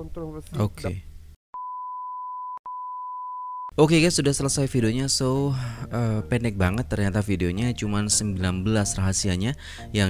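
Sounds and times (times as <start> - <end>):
single-pitch test tone: 1.6 - 3.7.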